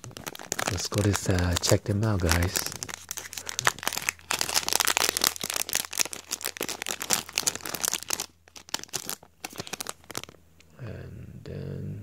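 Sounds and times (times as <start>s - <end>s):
plastic packaging crinkling: 0.0s - 10.4s.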